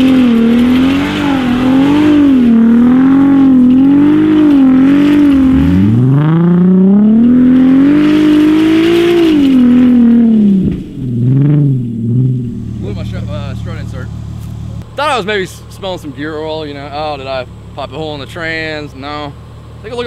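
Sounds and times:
car engine revving hard: 0.0 - 14.8.

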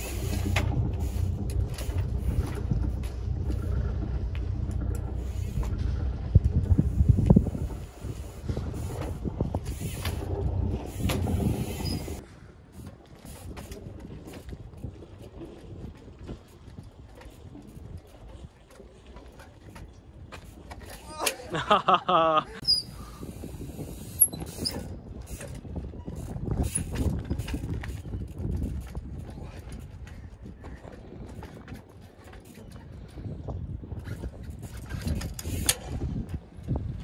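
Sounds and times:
engine rumbling: 0.0 - 12.8.

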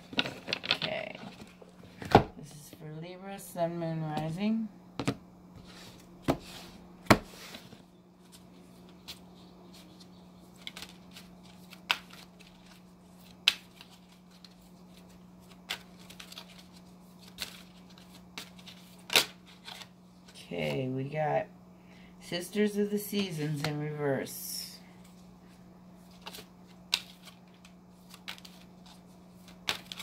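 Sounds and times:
faint steady hum: 0.0 - 30.0
cards being shuffled: 5.0 - 20.8, 26.0 - 30.0.

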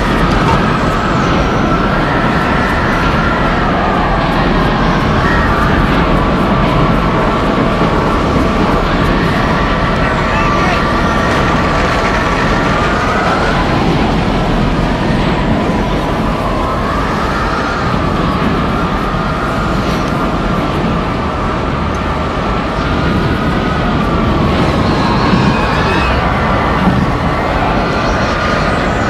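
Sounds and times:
howling wind whistle: 0.0 - 29.0
roaring tornado wind: 0.0 - 29.0.

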